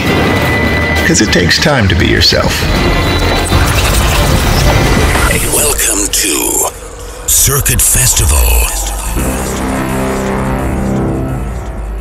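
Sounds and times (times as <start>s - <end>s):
sustained electronic tone: 6.8s - 12.0s.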